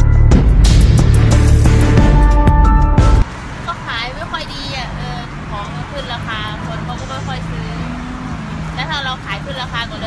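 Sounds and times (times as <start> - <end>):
music: 0.0 - 3.3
woman speaking: 3.7 - 8.0, 8.7 - 10.0.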